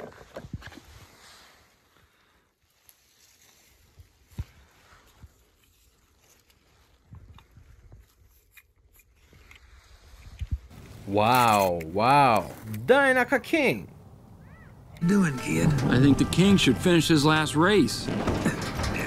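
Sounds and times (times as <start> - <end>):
rustling of dry leaves: 0.8 - 8.5, 10.7 - 12.7.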